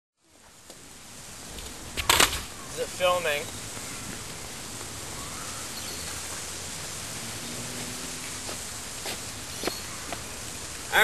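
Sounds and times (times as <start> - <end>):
outdoor background hiss: 0.2 - 11.0.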